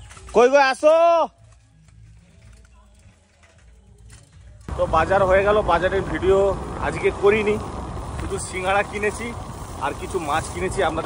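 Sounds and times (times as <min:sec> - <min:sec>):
motorbike engine rumble: 0:01.4 - 0:11.0
man talking: 0:04.7 - 0:07.6, 0:08.2 - 0:11.0.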